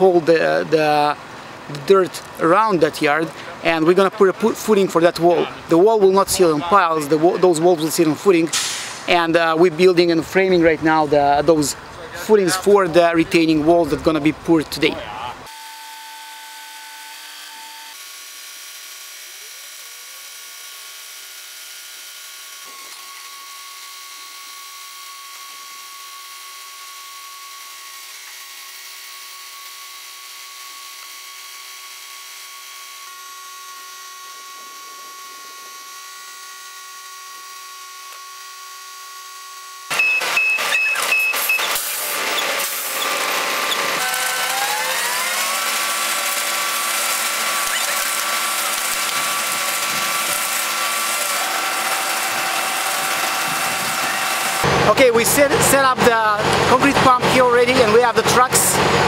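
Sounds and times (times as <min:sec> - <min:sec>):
diesel engines running: 0:00.0 - 0:15.5, 0:39.9 - 0:59.0
steady even whine: 0:47.4 - 0:59.0.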